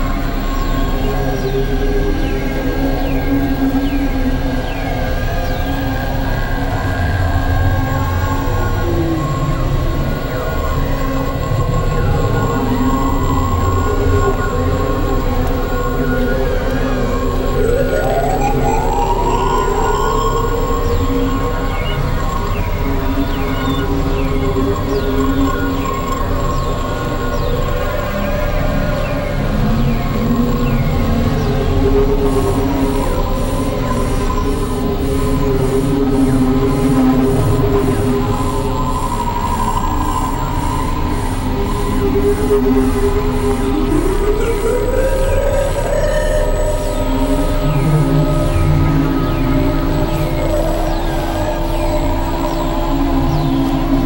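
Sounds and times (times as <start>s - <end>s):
dense low synthesizer drone: 0.0s - 54.0s
steady held synth tones: 0.0s - 54.0s.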